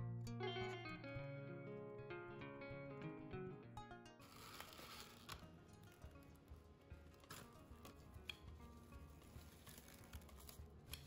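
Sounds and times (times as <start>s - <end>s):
background guitar music: 0.0s - 11.0s
cling film crinkling: 4.2s - 11.0s.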